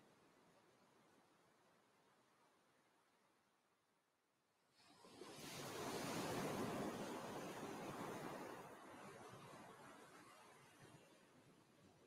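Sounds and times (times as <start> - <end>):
ocean wave washing in: 5.0 - 8.9.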